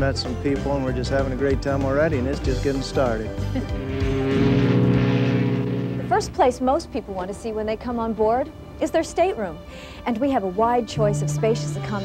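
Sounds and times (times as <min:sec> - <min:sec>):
ship's horn long low blast: 0:03.6 - 0:06.6.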